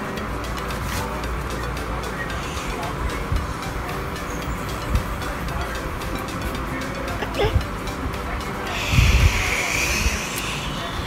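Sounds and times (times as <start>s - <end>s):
whooshing hiss: 8.6s - 11.0s.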